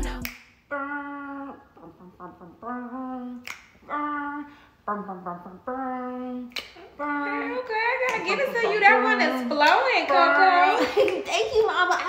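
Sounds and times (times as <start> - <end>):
finger snap: 0.0 - 0.6, 3.4 - 3.8, 6.5 - 6.8
woman humming: 0.0 - 9.5.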